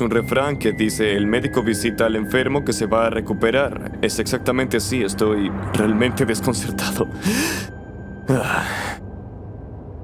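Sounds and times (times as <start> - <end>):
man sighing: 7.2 - 7.7, 8.3 - 9.0.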